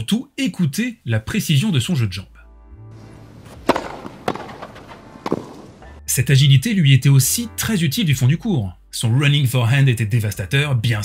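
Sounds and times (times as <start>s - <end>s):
low court ambience hush: 3.0s - 5.8s
tennis racket hitting ball: 3.1s - 5.8s.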